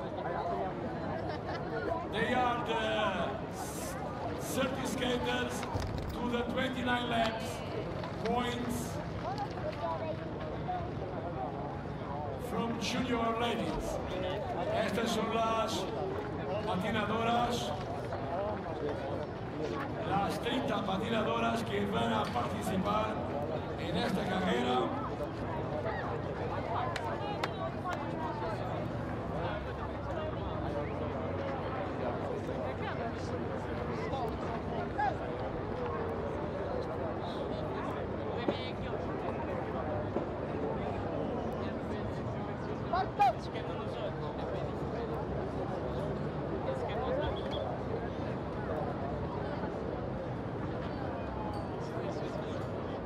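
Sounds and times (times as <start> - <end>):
chatter of many voices: 0.0 - 53.0.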